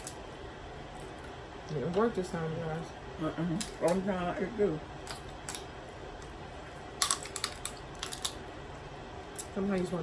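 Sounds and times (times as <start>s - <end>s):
crab shell cracking: 5.0s - 5.7s, 6.9s - 8.5s.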